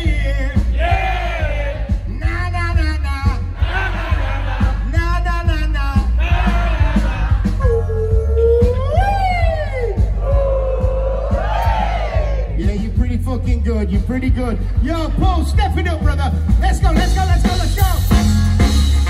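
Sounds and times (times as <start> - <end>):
man singing: 0.0 - 0.8
reggae band playing: 0.0 - 19.0.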